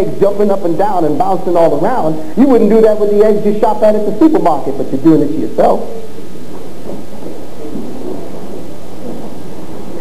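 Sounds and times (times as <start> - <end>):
tape hiss: 0.0 - 10.0
low hum: 5.9 - 10.0.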